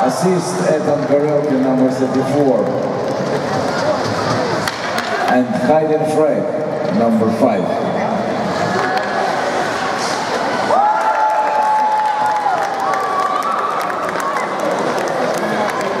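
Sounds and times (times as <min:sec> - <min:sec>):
crowd cheering and clapping: 0:08.6 - 0:16.0.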